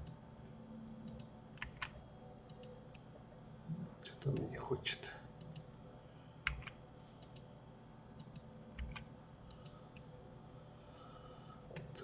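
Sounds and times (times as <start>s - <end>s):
faint steady hum: 0.0s - 12.0s
computer mouse clicks: 1.0s - 3.0s, 5.4s - 5.7s, 6.4s - 7.5s, 8.2s - 10.1s
keyboard clicks: 1.1s - 2.8s, 6.4s - 7.5s, 8.2s - 9.8s.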